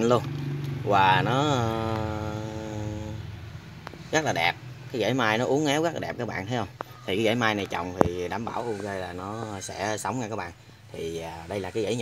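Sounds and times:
low background hum: 0:00.0 - 0:12.0
man saying uhh: 0:00.9 - 0:03.2.

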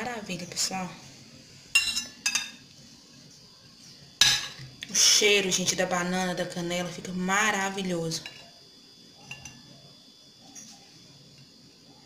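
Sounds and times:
cutlery clinking on a plate: 0:01.8 - 0:02.6, 0:04.2 - 0:04.6, 0:09.2 - 0:09.6.

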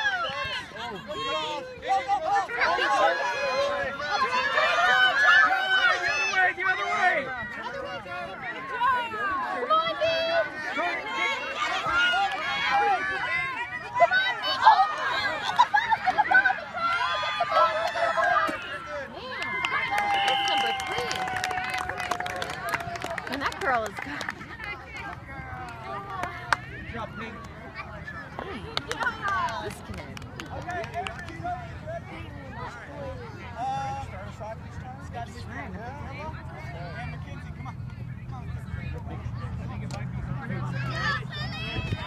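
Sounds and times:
crowd of spectators and children chattering: 0:00.0 - 0:42.0.

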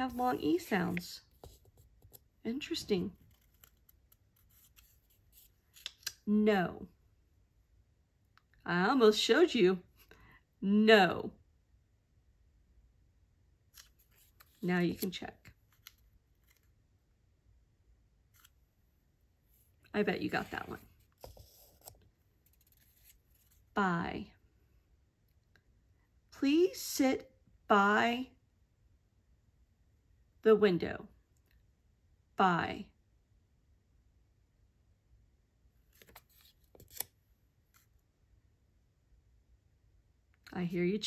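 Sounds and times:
person speaking: 0:00.0 - 0:03.2, 0:14.5 - 0:15.5, 0:19.9 - 0:21.9
paper card rustling: 0:00.0 - 0:06.2, 0:13.7 - 0:16.8, 0:20.2 - 0:23.7, 0:35.9 - 0:37.9
paper card scraping on whiteboard: 0:20.4 - 0:22.0.

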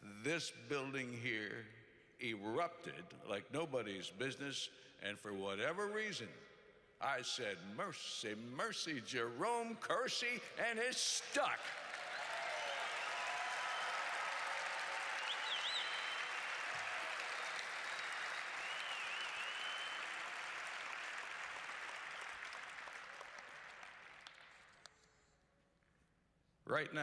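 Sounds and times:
audience applauding: 0:11.4 - 0:24.9
short whistles: 0:15.2 - 0:16.4, 0:17.4 - 0:20.2.

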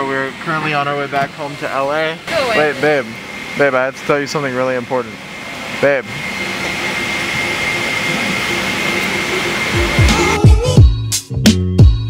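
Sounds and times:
thin high whine: 0:00.0 - 0:10.8
airliner cabin roar: 0:00.0 - 0:11.0.

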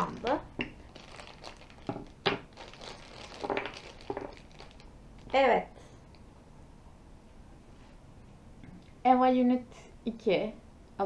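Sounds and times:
plastic bag crinkling: 0:00.0 - 0:05.4.

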